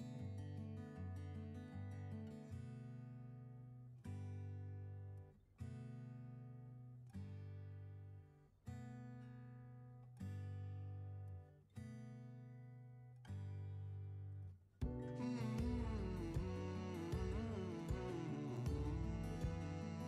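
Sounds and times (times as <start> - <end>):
acoustic guitar strumming chords: 14.8 - 20.0.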